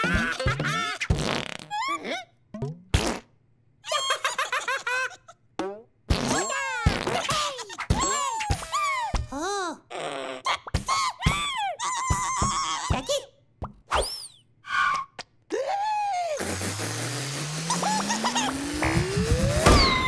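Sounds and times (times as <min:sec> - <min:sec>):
rising stretching sound: 0:16.4 - 0:20.0
springy cartoon boings: 0:17.6 - 0:20.0
loud sudden pop: 0:18.8 - 0:20.0.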